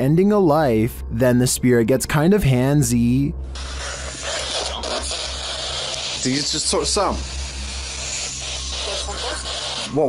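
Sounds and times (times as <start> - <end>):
low hum: 0.0 - 10.0
static hiss: 3.5 - 10.0.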